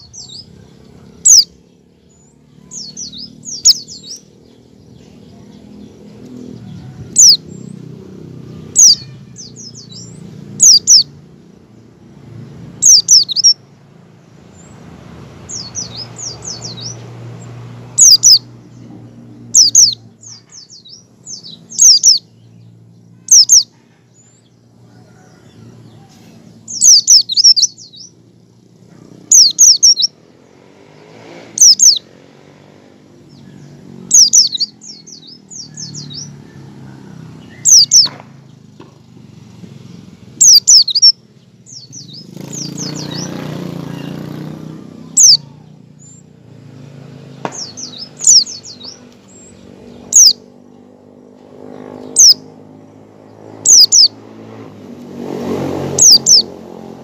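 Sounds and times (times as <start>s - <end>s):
bird twittering: 0.0s - 7.8s, 8.6s - 11.3s, 12.8s - 13.6s, 15.5s - 17.1s, 18.0s - 24.4s, 26.6s - 30.2s, 31.5s - 32.1s, 33.3s - 36.6s, 37.3s - 38.6s, 39.8s - 46.3s, 47.5s - 50.8s, 51.7s - 52.6s, 53.3s - 54.2s, 55.8s - 56.6s.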